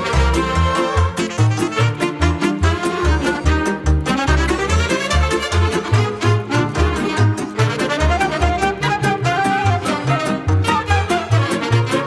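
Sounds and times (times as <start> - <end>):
bass notes beat: 0.0 - 12.0
fiddle-led folk song: 0.0 - 12.0.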